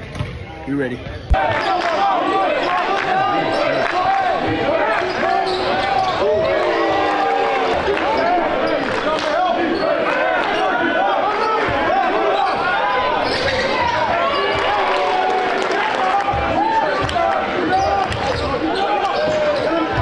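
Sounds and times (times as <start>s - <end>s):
voices echoing: 0.0s - 20.0s.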